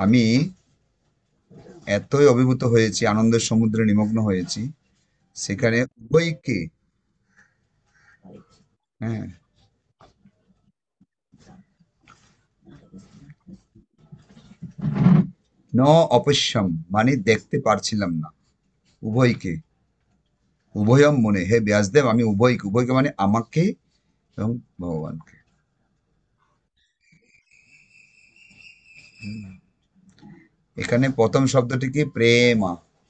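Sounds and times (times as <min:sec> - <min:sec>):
man talking over video call: 0:00.0 - 0:00.7, 0:01.6 - 0:06.8, 0:09.0 - 0:09.5, 0:14.8 - 0:19.7, 0:20.7 - 0:25.4, 0:29.2 - 0:29.6, 0:30.2 - 0:33.0
faint high-pitched whistling tone: 0:26.8 - 0:29.9.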